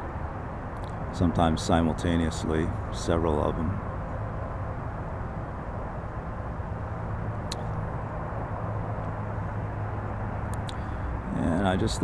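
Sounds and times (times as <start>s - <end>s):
outdoor background rumble: 0.0s - 12.0s
faint clicks: 10.5s - 10.8s.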